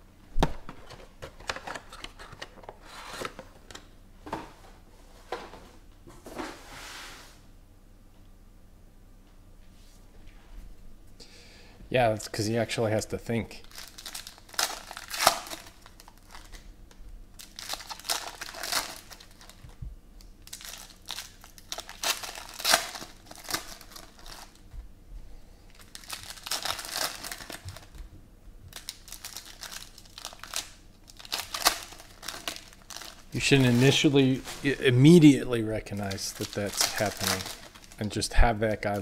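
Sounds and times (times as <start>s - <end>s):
foil wrappers crinkling and ripping: 13.6s - 19.8s, 20.4s - 24.6s, 25.7s - 28.0s, 28.7s - 39.0s.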